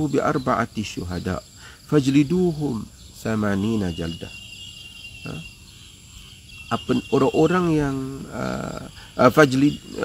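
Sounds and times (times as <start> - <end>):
man speaking: 0.0 - 4.3, 5.2 - 5.5, 6.7 - 10.0
insect trilling: 0.0 - 10.0.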